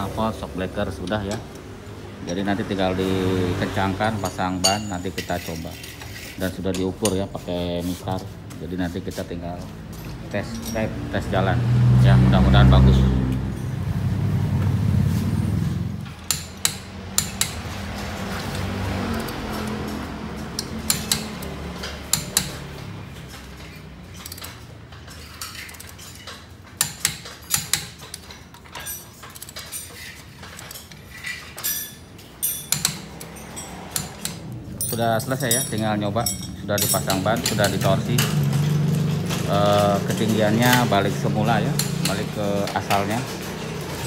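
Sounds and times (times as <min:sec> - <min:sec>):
steel tools clinking on car parts: 0:00.0 - 0:11.5, 0:16.0 - 0:44.0.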